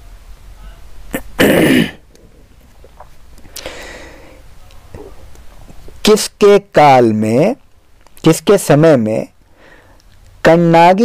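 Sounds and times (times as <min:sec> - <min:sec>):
man clearing his throat: 0:01.1 - 0:02.0.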